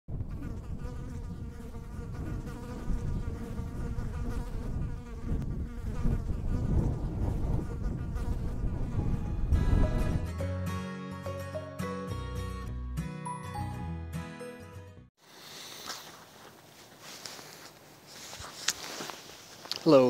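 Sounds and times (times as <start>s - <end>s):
honeybees buzzing: 0.2s - 9.8s
music: 9.0s - 15.1s.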